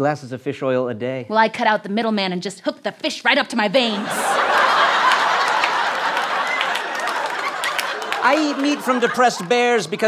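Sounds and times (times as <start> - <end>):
studio audience laughing: 3.8 - 10.0.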